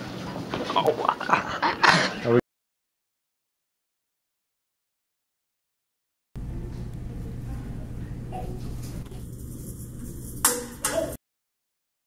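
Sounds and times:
low steady hum: 6.4s - 11.2s.

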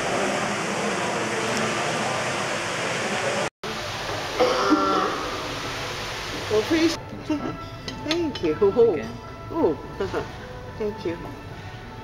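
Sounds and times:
large hall ambience: 0.0s - 6.9s.

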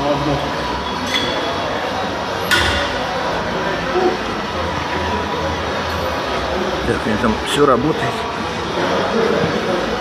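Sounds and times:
gym background noise: 0.0s - 10.0s.

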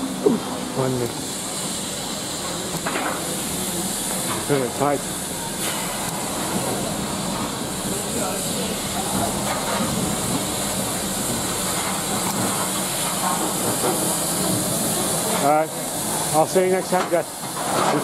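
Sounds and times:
steam locomotive hissing: 0.0s - 18.0s.

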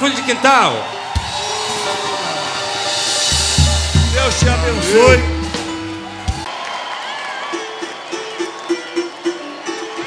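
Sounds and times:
bass drum strokes: 1.2s - 6.5s
cymbals ringing: 1.2s - 6.5s.

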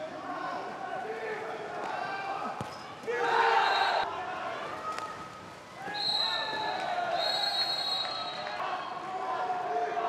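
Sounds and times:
referee's whistle blasts: 5.9s - 6.6s, 7.2s - 8.5s.

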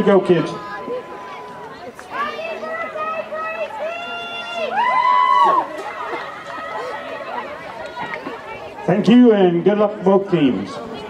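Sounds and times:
young voices shouting: 0.0s - 9.4s
crowd chatter: 0.0s - 11.0s.

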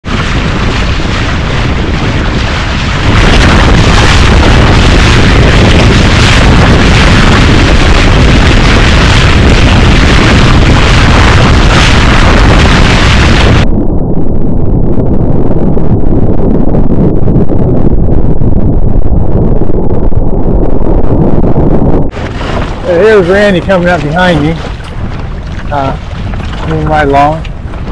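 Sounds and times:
water rushing along hull: 0.0s - 13.6s, 22.1s - 27.9s
low rumble: 0.0s - 27.9s
wind buffeting microphone: 0.0s - 27.9s.

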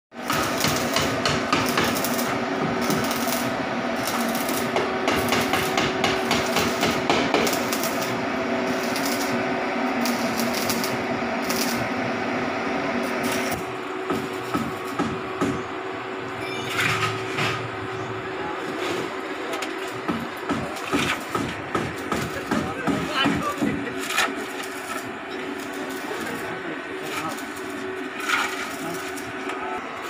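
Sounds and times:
steady hum: 0.2s - 30.0s
knocks on metal: 4.7s - 7.6s, 14.1s - 15.6s, 20.1s - 23.8s.

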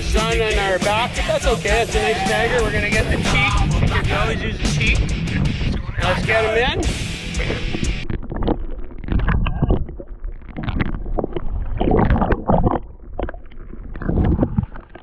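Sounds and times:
muffled underwater sloshing: 7.4s - 15.0s.

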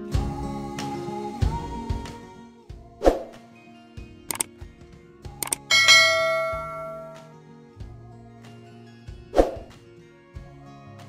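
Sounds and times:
background music: 0.0s - 11.0s
quick clicks: 5.4s - 5.7s
bell-like chime: 5.4s - 7.3s.

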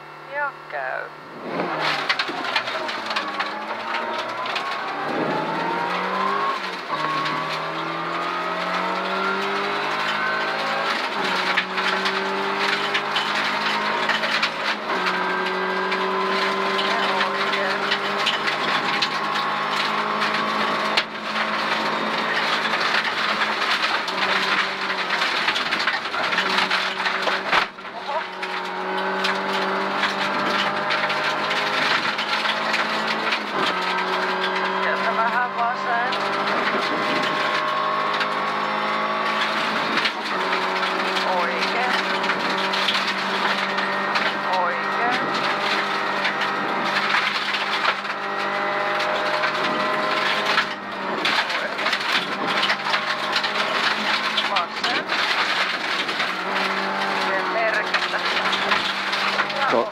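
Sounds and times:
rally car engine at full throttle: 0.0s - 59.9s.

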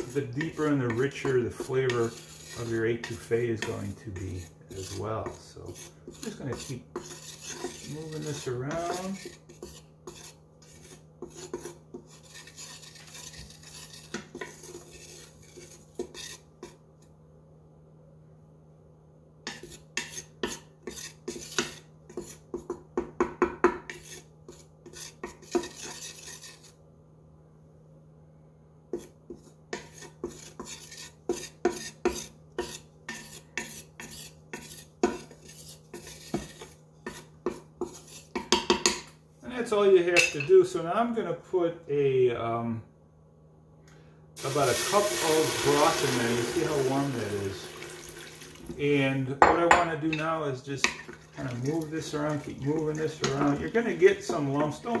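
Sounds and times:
wooden spatula scraping metal pot: 0.0s - 16.8s, 19.4s - 23.1s, 23.7s - 26.8s, 28.9s - 39.1s, 44.4s - 55.0s.

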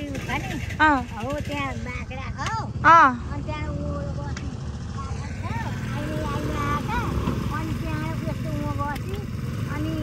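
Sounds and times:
motor scooters rumbling: 0.0s - 10.0s.

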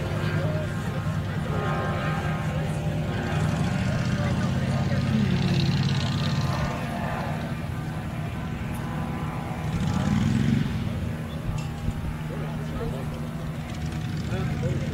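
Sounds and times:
engine idling: 0.0s - 14.9s.

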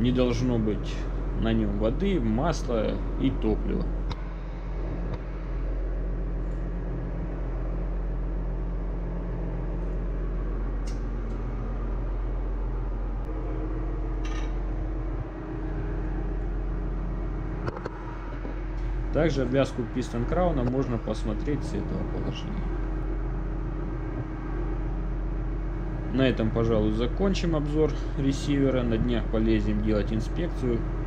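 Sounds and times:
engine-room machinery hum: 0.0s - 31.0s
higher machinery tone: 0.0s - 31.0s.

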